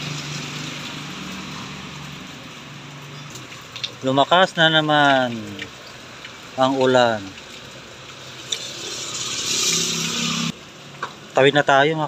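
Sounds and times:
tyres hissing on wet road: 0.0 - 11.3
motorcycle engine: 8.4 - 10.6.

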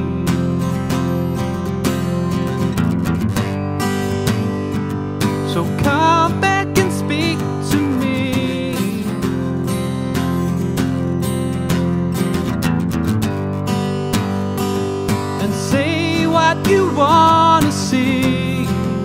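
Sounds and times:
man singing: 0.0 - 0.8, 5.4 - 9.5, 15.3 - 19.0
acoustic guitar strumming: 0.0 - 19.0.

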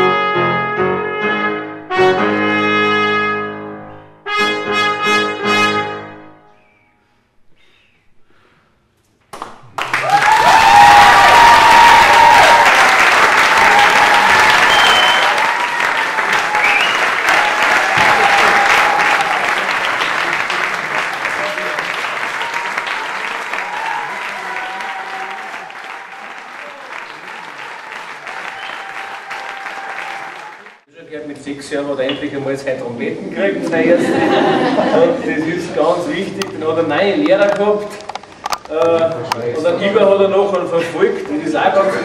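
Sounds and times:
audience applauding: 9.3 - 30.9.

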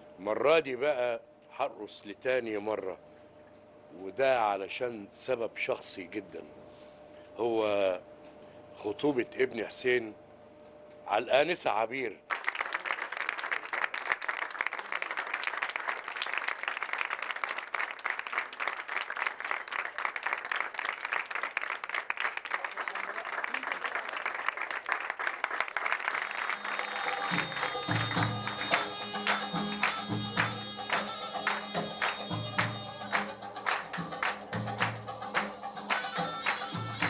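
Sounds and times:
crowd applauding: 12.3 - 37.0
music with steady beat: 26.9 - 37.0.

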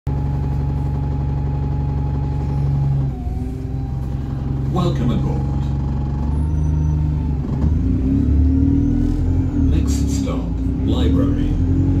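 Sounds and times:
bus engine pulling away: 0.1 - 12.0.

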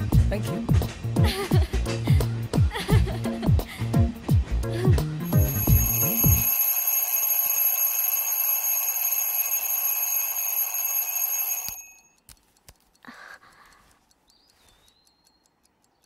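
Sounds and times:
background music: 0.0 - 6.5
faint clock ticks: 5.2 - 16.0
bell alarm clock ringing: 5.3 - 12.2.

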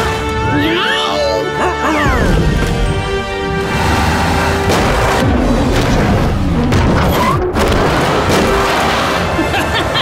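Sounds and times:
action score music: 0.0 - 10.0
pavement breaking crashes: 4.7 - 9.4.

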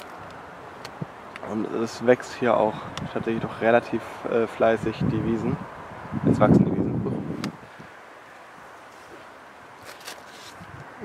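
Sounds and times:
wind on microphone: 2.7 - 3.8, 4.6 - 8.0, 10.4 - 11.0
soft rustle: 7.7 - 11.0.

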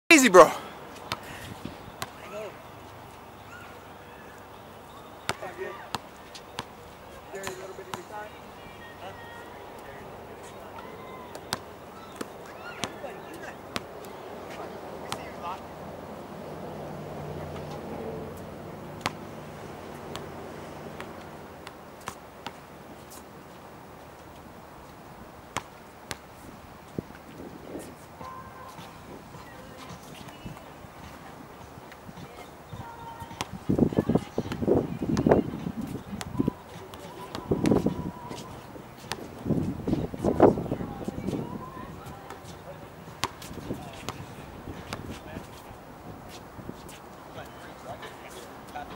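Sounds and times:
faint voices: 0.1 - 21.6, 27.6 - 48.9
steady outdoor hiss: 0.1 - 48.9
basketball bouncing on asphalt: 5.3 - 6.8, 19.0 - 19.3, 33.2 - 38.0, 43.2 - 44.3.

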